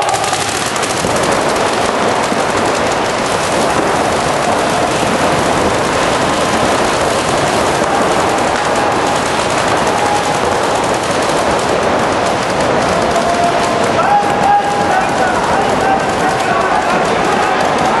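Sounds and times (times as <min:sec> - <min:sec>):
paintball markers firing rapidly: 0:00.0 - 0:18.0.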